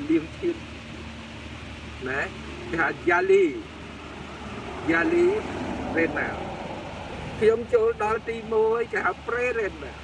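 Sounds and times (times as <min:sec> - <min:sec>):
road traffic rumble: 0:00.0 - 0:10.0
man speaking: 0:02.0 - 0:03.8, 0:04.8 - 0:06.4, 0:07.4 - 0:10.0.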